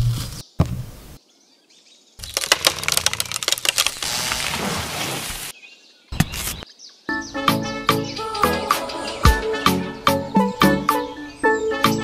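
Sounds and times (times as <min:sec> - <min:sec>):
dry soil crunching and scraping: 0:00.0 - 0:00.6, 0:02.2 - 0:05.6, 0:06.2 - 0:06.6.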